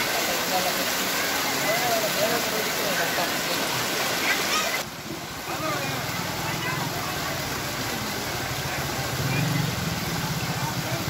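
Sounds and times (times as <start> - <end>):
floodwater gushing over rubble: 0.0 - 11.0.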